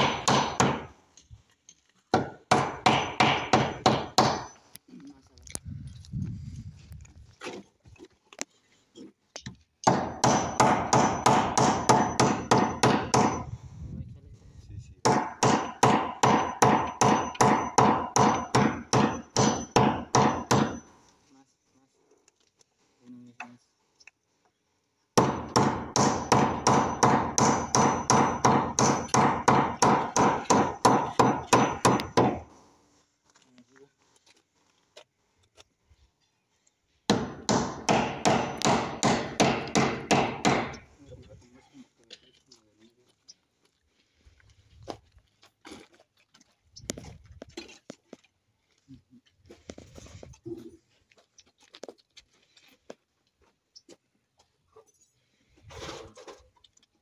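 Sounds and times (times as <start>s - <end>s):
hammer striking wooden frame: 0.0s - 0.9s, 2.1s - 4.6s, 9.8s - 13.5s, 15.0s - 20.9s, 25.2s - 32.5s, 37.1s - 40.9s.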